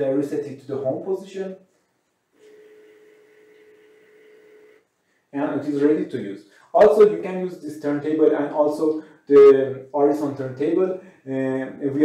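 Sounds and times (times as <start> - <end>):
turntable motor whine: 2.4 - 4.8.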